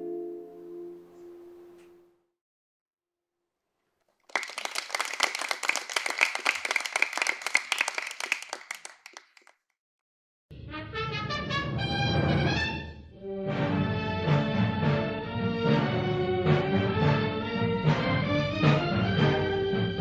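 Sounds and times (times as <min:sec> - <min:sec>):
audience applauding: 0:04.2 - 0:09.6
orchestral music with brass: 0:10.6 - 0:20.0.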